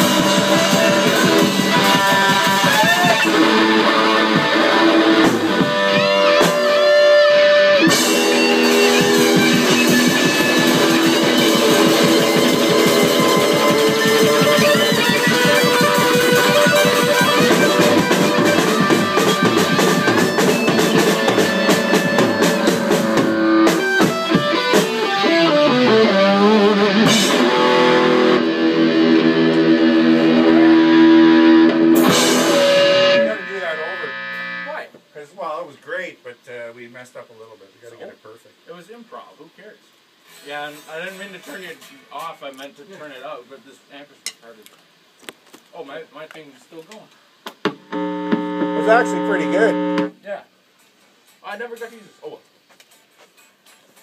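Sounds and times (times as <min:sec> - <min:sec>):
loud electric guitars: 0:00.0 - 0:34.7, 0:47.6 - 0:50.2
drums: 0:00.0 - 0:54.0.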